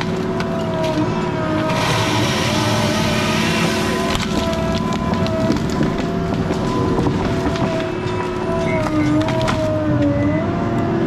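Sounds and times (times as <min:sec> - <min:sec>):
diesel engine running under load: 0:00.0 - 0:11.0.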